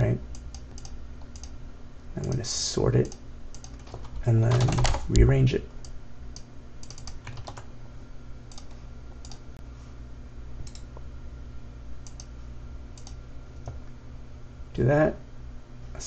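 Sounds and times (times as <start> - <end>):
steady low hum: 0.0 - 16.0
computer keyboard keystrokes: 0.3 - 1.6, 3.0 - 7.7, 8.5 - 9.4, 10.7 - 10.9, 13.0 - 13.8.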